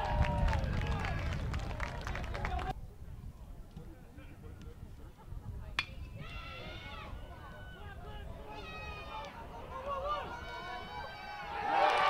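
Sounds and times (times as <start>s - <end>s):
metal bat cracking ball: 5.8s - 6.1s.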